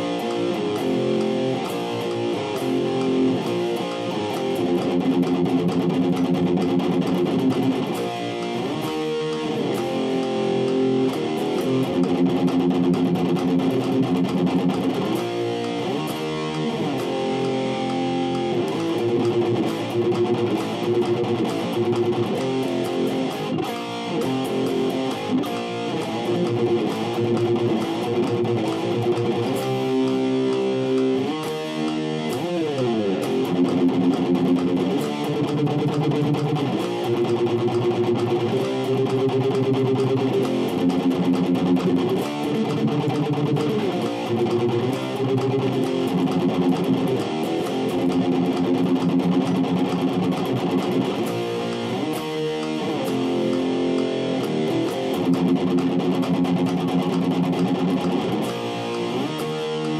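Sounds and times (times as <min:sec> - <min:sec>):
electric guitar rock riff: 0:00.0 - 0:59.9.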